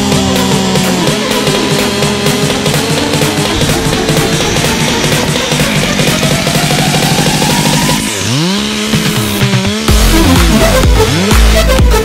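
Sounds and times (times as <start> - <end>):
chainsaw revving: 0.0 - 12.0
electronic music with steady beat: 0.0 - 12.0.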